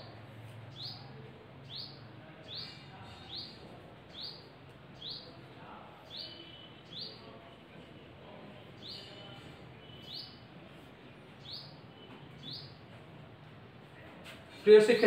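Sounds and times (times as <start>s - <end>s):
bird chirping: 0.7s - 5.4s, 6.0s - 7.3s, 8.6s - 10.5s, 11.4s - 12.9s.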